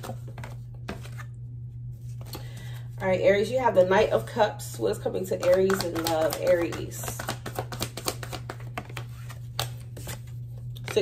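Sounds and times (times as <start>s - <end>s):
cards being shuffled: 0.0s - 2.6s, 5.2s - 11.0s.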